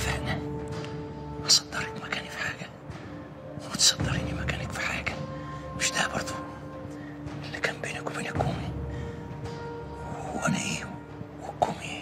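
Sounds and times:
person whispering: 0.0s - 0.6s, 1.4s - 2.8s, 3.6s - 6.7s, 7.4s - 8.8s, 10.1s - 12.0s
quiet background music: 0.0s - 12.0s.

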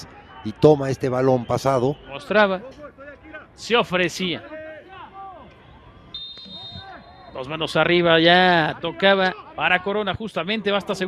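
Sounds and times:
referee's whistle blast: 6.1s - 7.5s.

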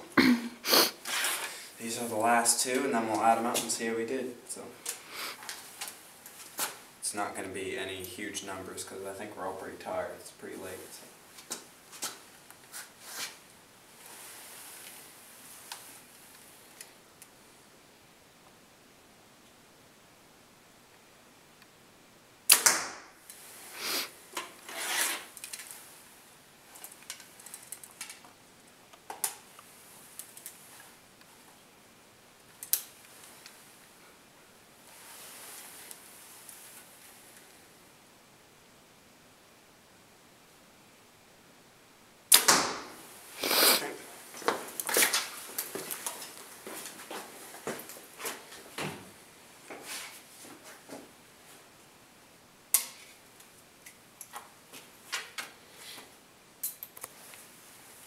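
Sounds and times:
rustling: 0.9s - 3.8s, 23.3s - 28.3s, 34.8s - 37.7s, 42.8s - 51.7s
arrow striking target: 22.5s - 23.1s, 42.3s - 43.0s
bow string release crack: 42.3s - 42.9s.

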